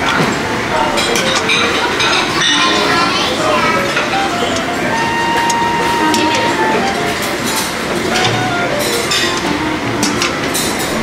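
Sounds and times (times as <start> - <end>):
background chatter: 0.0 - 11.0
crockery and dishes clinking: 0.0 - 11.0
soft music: 0.7 - 11.0.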